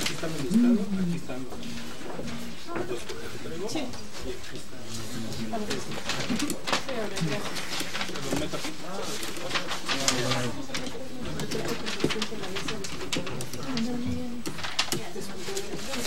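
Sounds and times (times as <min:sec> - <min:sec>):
voices murmuring: 0:00.0 - 0:04.4
papers rustling: 0:00.0 - 0:16.0.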